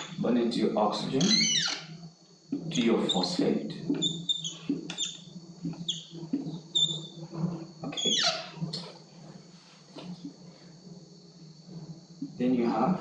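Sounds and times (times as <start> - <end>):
marker squeaking on a whiteboard: 0.0 - 0.2, 1.0 - 10.4.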